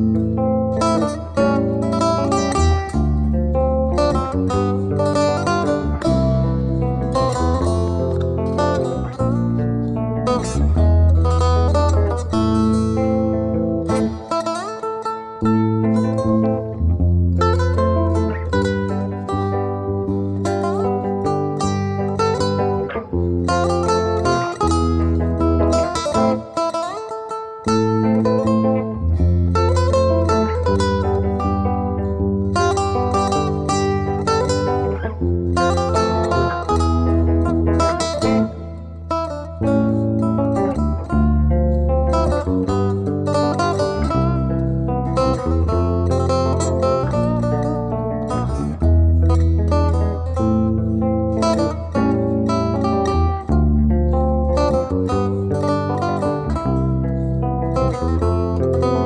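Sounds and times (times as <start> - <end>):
deep bass guitar notes: 0.0 - 27.0, 27.6 - 59.0
plucked lute melody: 0.0 - 59.0.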